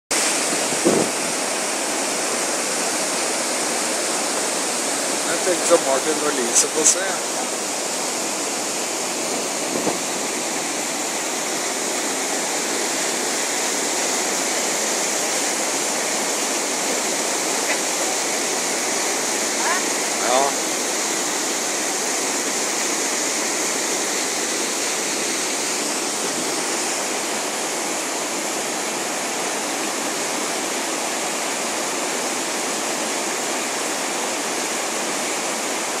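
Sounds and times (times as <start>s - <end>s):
river rapids rushing: 0.1s - 36.0s.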